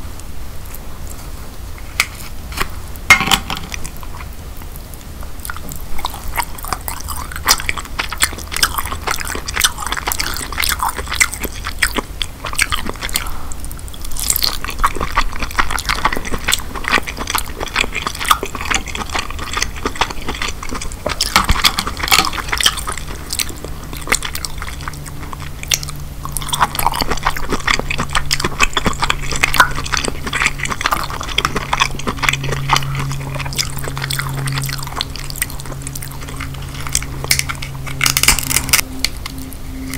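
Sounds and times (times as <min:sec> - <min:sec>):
wet chewing and smacking: 0:02.0 - 0:39.9.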